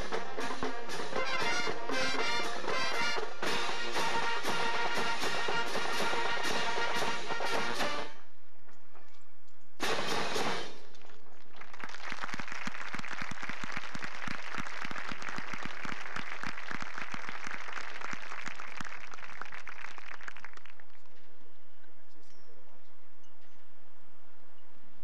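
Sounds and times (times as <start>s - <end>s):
marching band chord: 0.0s - 8.3s, 9.8s - 10.9s
audience applauding: 11.2s - 21.0s.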